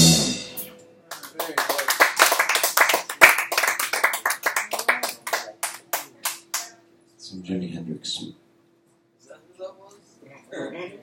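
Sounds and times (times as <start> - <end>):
small audience applauding: 1.1 - 6.8.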